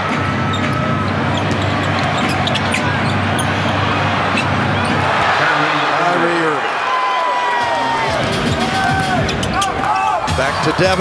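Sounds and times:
music: 0:00.0 - 0:05.1, 0:07.6 - 0:11.0
arena noise: 0:00.0 - 0:11.0.

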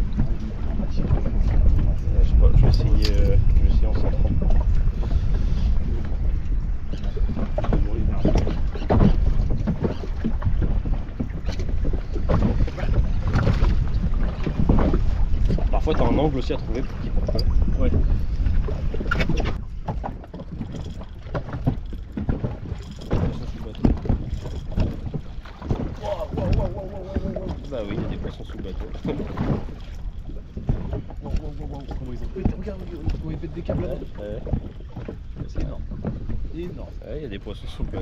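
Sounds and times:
low rumble: 0:00.0 - 0:19.9
waves slapping against hull: 0:00.0 - 0:38.0
wind buffeting microphone: 0:00.0 - 0:38.0.

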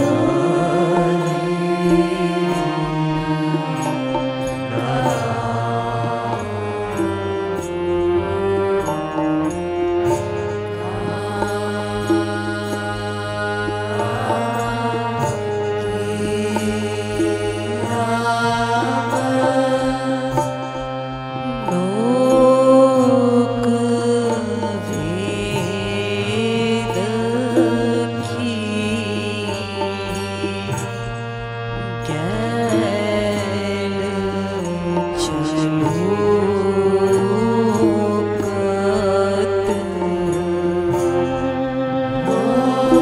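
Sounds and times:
harmonium chords: 0:00.0 - 0:43.0
person singing chant-like melody: 0:00.0 - 0:43.0.

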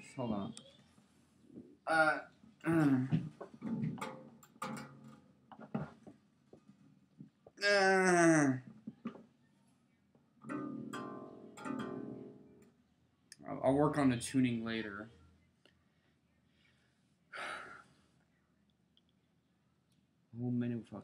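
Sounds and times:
person clearing throat: 0:01.9 - 0:03.2
acoustic guitar plucked and strummed: 0:10.4 - 0:12.6.

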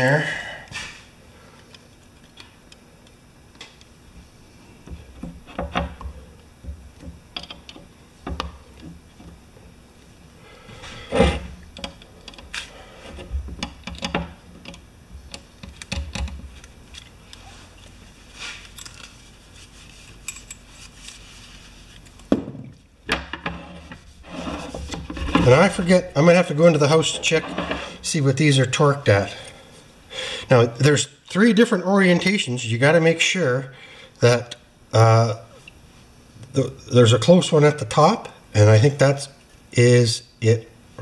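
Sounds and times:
metal parts clinking and knocking: 0:18.6 - 0:19.2, 0:20.2 - 0:20.9.

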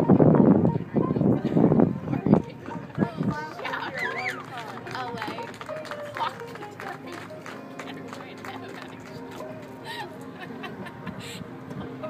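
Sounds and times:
background music: 0:00.0 - 0:12.0
faint indistinct voices: 0:00.0 - 0:12.0.

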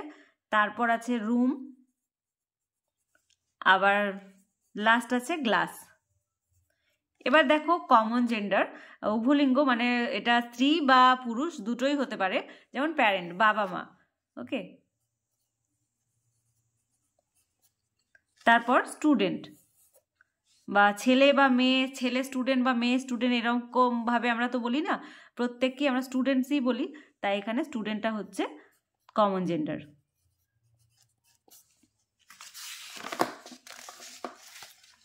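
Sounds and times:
pencil scratching on paper: 0:00.9 - 0:07.2, 0:13.2 - 0:21.1, 0:29.9 - 0:32.1.

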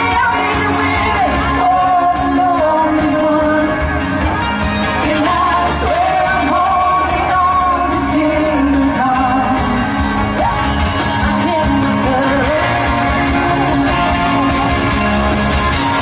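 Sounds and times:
live band with electric guitar: 0:00.0 - 0:16.0
woman singing lead melody: 0:00.0 - 0:16.0.

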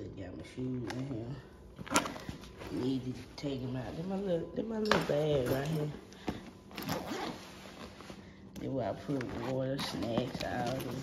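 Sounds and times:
zipper rasping: 0:06.7 - 0:08.0.

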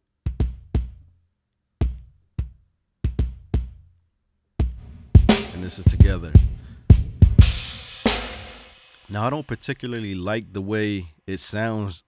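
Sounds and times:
kick drum hits: 0:04.6 - 0:08.4
bright snare-like hit: 0:07.4 - 0:09.0.

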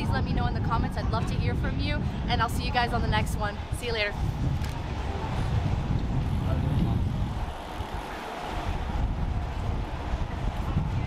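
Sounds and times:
low street rumble: 0:00.0 - 0:11.0
voices of passers-by: 0:00.0 - 0:11.0.

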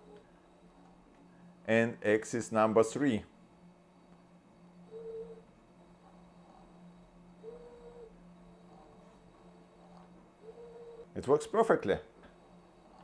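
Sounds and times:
steady low hum: 0:00.0 - 0:13.0
robot arm motors whining: 0:04.7 - 0:11.1.

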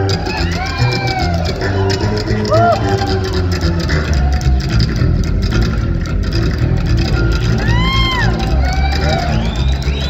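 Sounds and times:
slap double bass: 0:00.0 - 0:10.0.

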